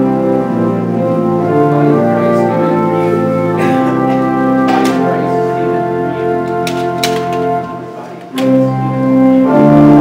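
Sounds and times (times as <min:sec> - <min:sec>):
organ chords: 0:00.0 - 0:10.0.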